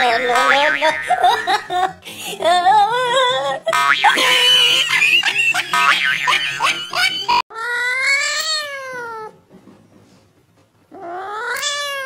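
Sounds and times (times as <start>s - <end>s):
cat meowing: 7.5s - 9.4s, 11.0s - 12.0s.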